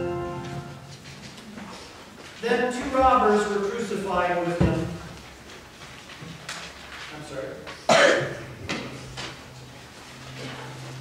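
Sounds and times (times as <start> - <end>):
person coughing: 7.9 - 8.5.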